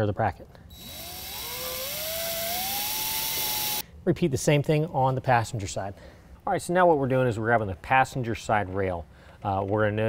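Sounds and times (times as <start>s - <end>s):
power drill driving a screw: 0.7s - 3.8s.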